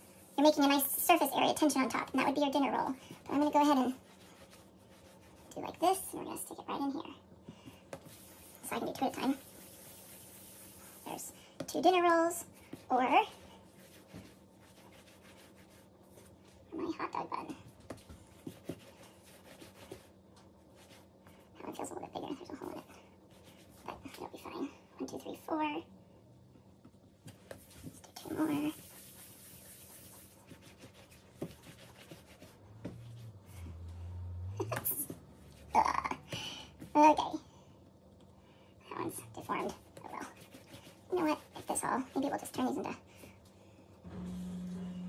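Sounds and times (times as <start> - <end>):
hands kneading dough: 0.0 - 6.5, 7.4 - 16.7, 17.4 - 21.8, 27.2 - 33.9, 39.4 - 43.3.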